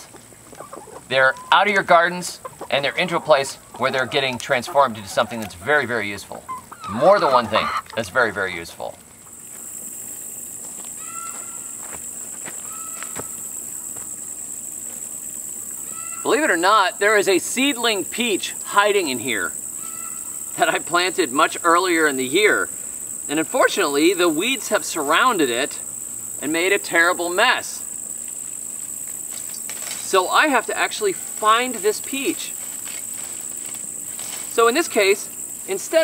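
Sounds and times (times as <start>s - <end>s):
insects droning: 0.0s - 36.0s
rustling through tall weeds: 3.6s - 16.4s, 27.8s - 36.0s
footsteps through weeds: 9.0s - 15.2s, 28.8s - 30.4s, 31.1s - 35.2s
rustling of weed stems: 27.6s - 36.0s.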